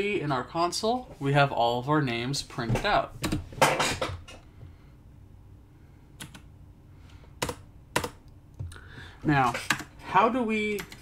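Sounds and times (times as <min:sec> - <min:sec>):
keyboard typing: 0:06.2 - 0:06.5, 0:07.4 - 0:08.8, 0:09.5 - 0:09.9, 0:10.7 - 0:11.0.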